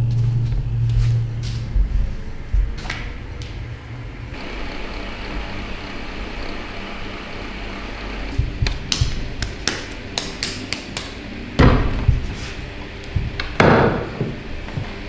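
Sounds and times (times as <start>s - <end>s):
electric fan whooshing: 0.0s - 15.0s
sharp taps and knocks: 8.4s - 12.4s.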